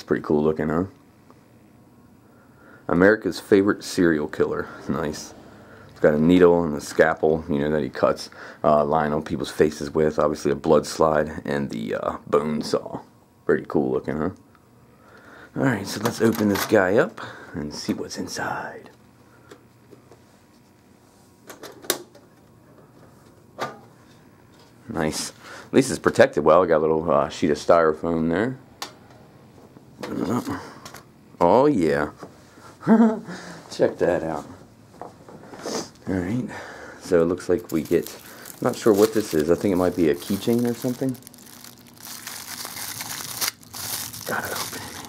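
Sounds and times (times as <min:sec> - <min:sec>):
plastic wrapping crinkling and tearing: 0:37.7 - 0:45.0.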